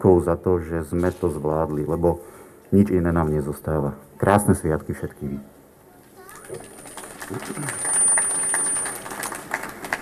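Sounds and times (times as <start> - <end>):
small crowd clapping: 6.2 - 10.0.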